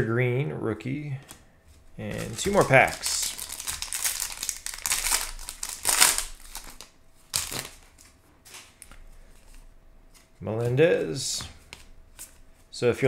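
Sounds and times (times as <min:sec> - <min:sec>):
foil wrapper tearing and crinkling: 0:02.1 - 0:07.8.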